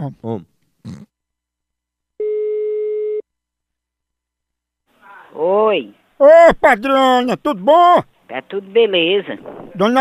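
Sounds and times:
telephone ringback tone: 0:02.2 - 0:03.2.

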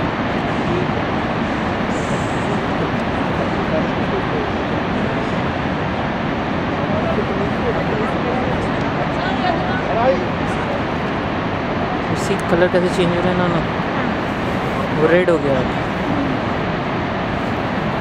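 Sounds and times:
waterfall rushing: 0:00.0 - 0:18.0
faint voices of people: 0:00.5 - 0:05.6, 0:15.6 - 0:16.7.

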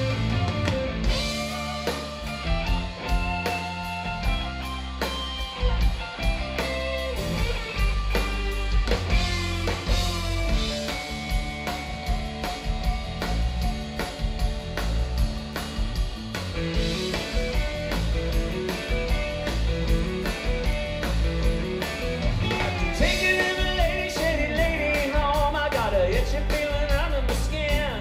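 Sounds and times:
live rock band playing: 0:00.0 - 0:28.0.

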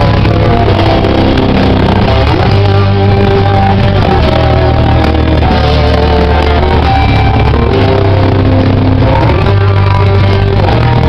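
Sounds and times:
punk band playing loud: 0:00.0 - 0:11.0.

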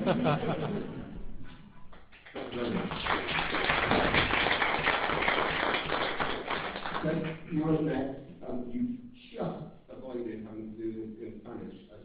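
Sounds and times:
audience applauding: 0:01.9 - 0:07.4.

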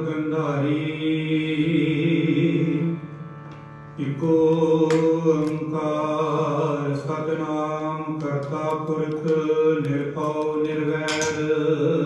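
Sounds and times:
harmoniums holding a chord: 0:00.0 - 0:12.0.

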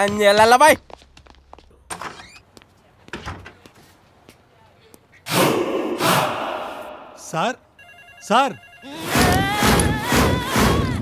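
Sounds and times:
telephone ringing: 0:07.8 - 0:09.2.

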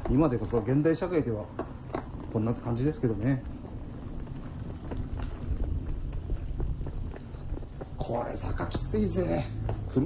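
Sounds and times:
faint high insect-like tone: 0:00.0 - 0:10.0
footsteps on pavement: 0:00.0 - 0:10.0.

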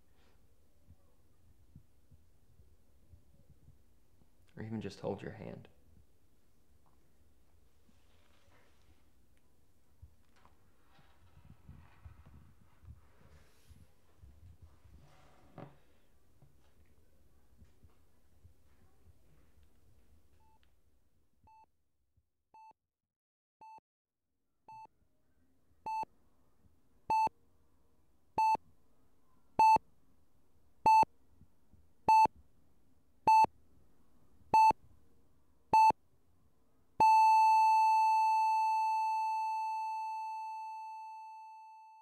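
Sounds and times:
heart monitor beeping: 0:25.9 - 0:26.1, 0:27.1 - 0:27.3, 0:28.4 - 0:28.6, 0:29.6 - 0:29.8, 0:30.9 - 0:31.1, 0:32.1 - 0:32.3, 0:33.3 - 0:33.5, 0:34.5 - 0:34.8, 0:35.7 - 0:36.0, 0:37.0 - 0:42.0
flatline tone: 0:37.0 - 0:42.0.

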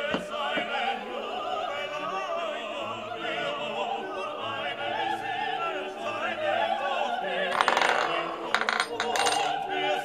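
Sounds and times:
opera singing: 0:00.0 - 0:10.0
coin spinning on wooden board: 0:07.5 - 0:09.5.

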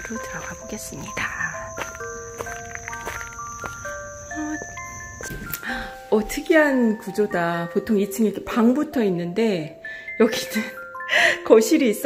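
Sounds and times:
insects droning: 0:00.0 - 0:07.4
soft background music: 0:00.0 - 0:12.0.

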